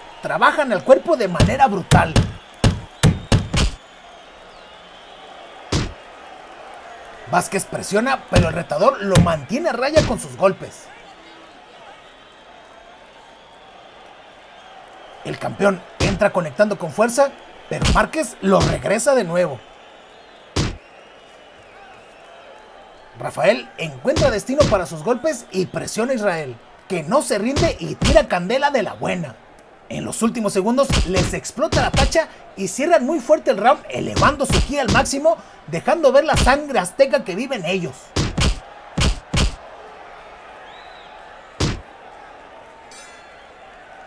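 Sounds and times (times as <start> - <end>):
boxing glove punch thud: 1.4 - 3.8, 5.7 - 6.0, 20.6 - 20.8, 38.2 - 39.6, 41.6 - 41.9
boxing gloves punching thuds: 1.4 - 3.8, 5.7 - 6.0, 9.2 - 9.4, 17.8 - 18.8, 20.6 - 20.8, 24.2 - 24.8, 27.6 - 28.2, 30.9 - 32.2, 34.2 - 35.1, 38.1 - 39.6, 41.6 - 41.9.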